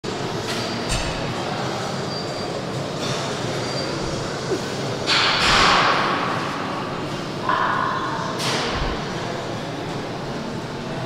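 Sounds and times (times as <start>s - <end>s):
gym hall background noise: 0.0s - 11.0s.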